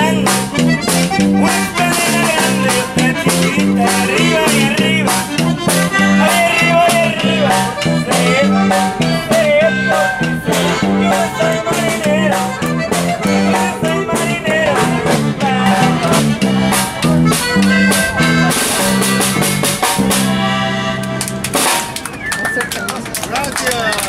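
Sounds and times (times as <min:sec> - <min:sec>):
voices: 0:00.0 - 0:20.6, 0:21.5 - 0:24.0
live band playing: 0:00.0 - 0:24.0
people clapping: 0:20.9 - 0:24.0.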